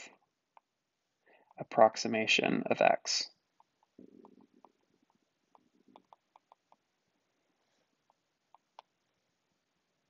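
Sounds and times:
stylus ticking on tablet: 0:03.6 - 0:06.9.

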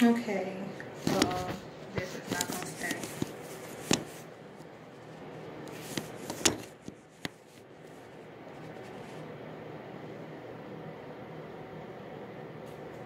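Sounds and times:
low background hum: 0:00.0 - 0:13.0.

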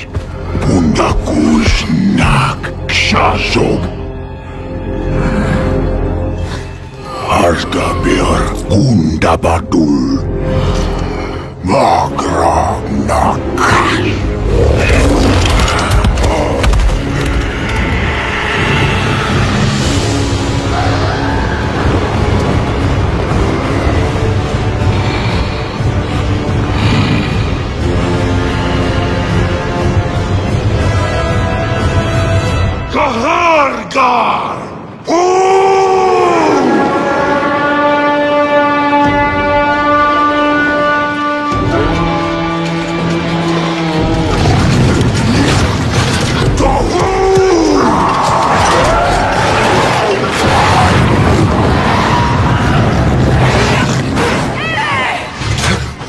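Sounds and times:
low horn chord: 0:36.8 - 0:44.0.

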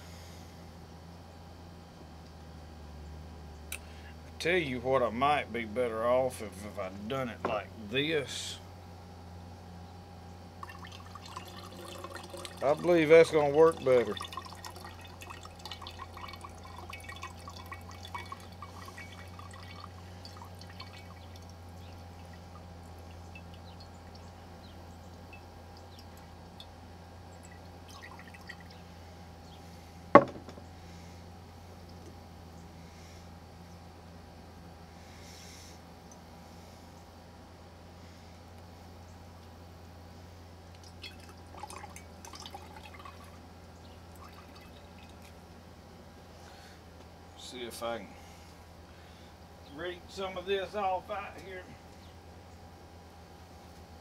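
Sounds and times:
steady low hum: 0:00.0 - 0:54.0
liquid dripping into a glass jar: 0:10.6 - 0:24.4, 0:25.0 - 0:28.9, 0:40.7 - 0:43.4, 0:44.1 - 0:45.4.

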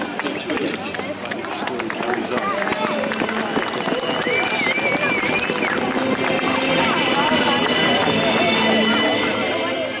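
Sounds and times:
background music with held notes: 0:00.0 - 0:10.0
crowd chatter: 0:00.0 - 0:10.0.

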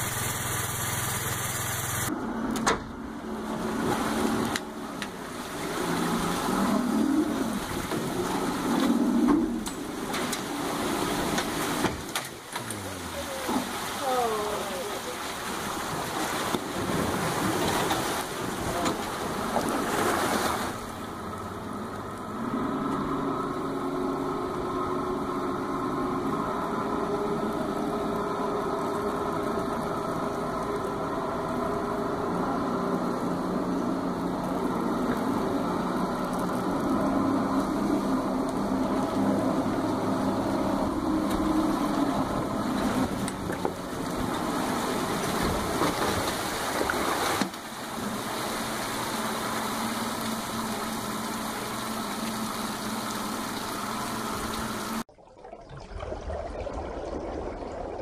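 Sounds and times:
boat engine running under load: 0:00.0 - 0:55.0.

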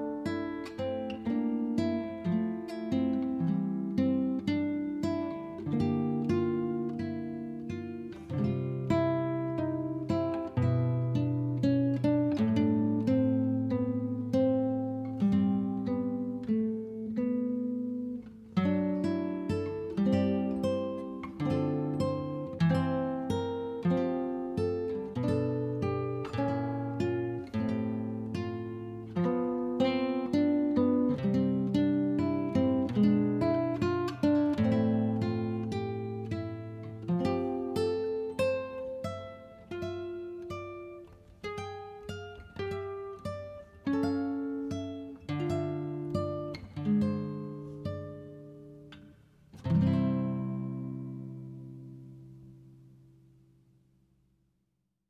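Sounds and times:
plucked acoustic guitar: 0:00.0 - 0:53.5.

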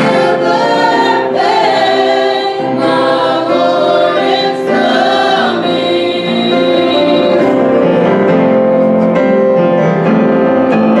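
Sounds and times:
youth choir singing gospel: 0:00.0 - 0:08.5
piano accompaniment: 0:00.0 - 0:11.0.

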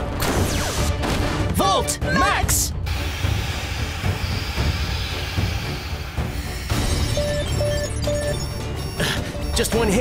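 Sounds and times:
dramatic music: 0:00.0 - 0:10.0
electronic alarm beeps: 0:06.5 - 0:10.0.

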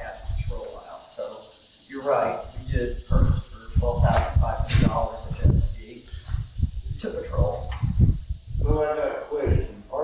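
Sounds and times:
person talking: 0:00.0 - 0:06.1, 0:08.6 - 0:10.0.

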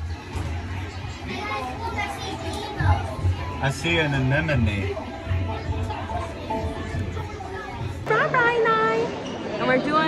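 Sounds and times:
children talking and calling out: 0:00.0 - 0:03.8, 0:05.0 - 0:10.0.

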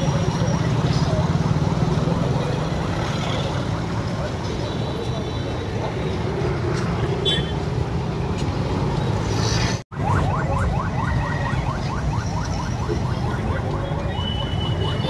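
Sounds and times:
motor traffic: 0:00.0 - 0:15.0
scooters and motorbikes: 0:00.0 - 0:15.0.

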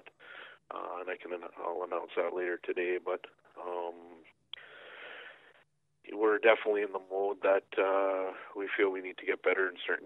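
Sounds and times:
man breathing over telephone: 0:00.1 - 0:00.7, 0:04.6 - 0:05.6.

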